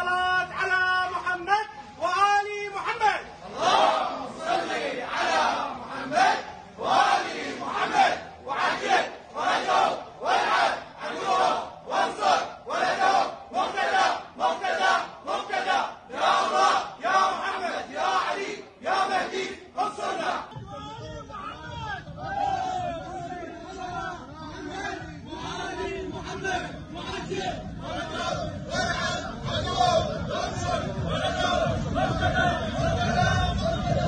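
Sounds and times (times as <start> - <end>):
men chanting in unison: 3.4 - 20.6, 22.3 - 34.0.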